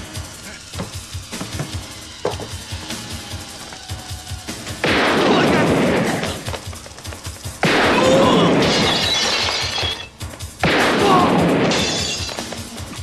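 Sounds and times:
action music with pounding beat: 0.0 - 9.0, 9.6 - 13.0.

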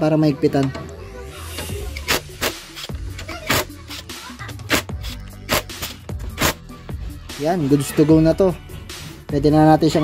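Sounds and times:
background music with a beat: 0.6 - 10.0.

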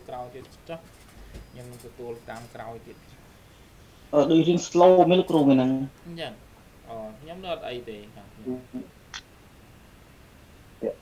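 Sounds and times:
steady low hum: 0.0 - 11.0
person talking through video call: 4.1 - 8.9.

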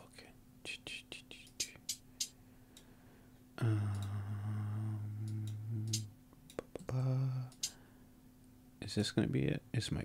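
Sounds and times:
faint steady hum: 0.0 - 10.0
hi-hat ticks: 0.7 - 2.9, 3.7 - 4.2, 5.2 - 7.8.

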